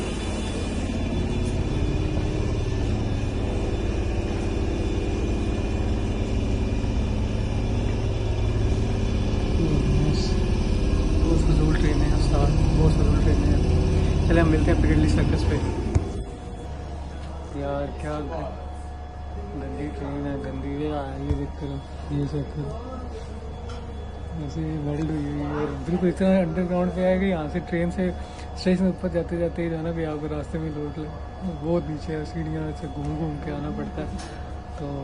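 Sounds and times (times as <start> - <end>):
underground train rumble: 0.0 - 35.0.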